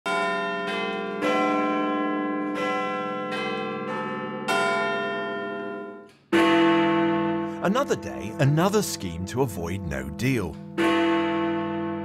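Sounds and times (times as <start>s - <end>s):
tower bells chiming: 0.1s - 12.0s.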